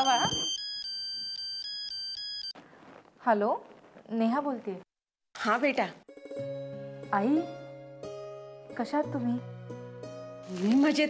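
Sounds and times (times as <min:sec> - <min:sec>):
phone ringtone beeping melody: 0:00.0 - 0:02.6.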